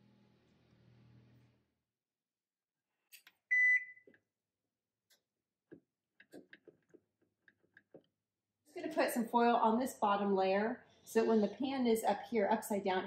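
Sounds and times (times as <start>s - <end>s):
oven control beep: 3.5s - 4.0s.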